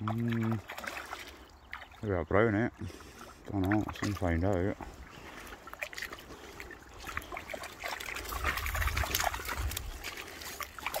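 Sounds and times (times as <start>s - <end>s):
fish thrashing in water: 0.0s - 2.1s, 2.9s - 11.0s
river water trickling: 0.0s - 11.0s.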